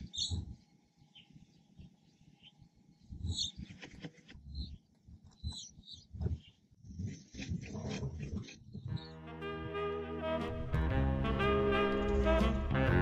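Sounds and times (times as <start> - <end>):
high bird chirps: 0.0 - 7.4.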